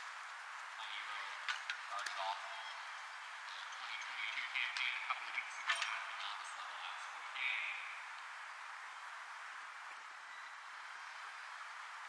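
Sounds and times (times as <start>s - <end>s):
outdoor background hiss: 0.0s - 12.0s
distant indistinct voices: 0.7s - 12.0s.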